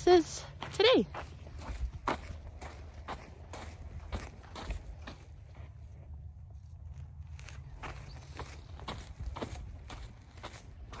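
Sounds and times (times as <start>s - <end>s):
footsteps crunching on gravel: 0.1s - 11.0s.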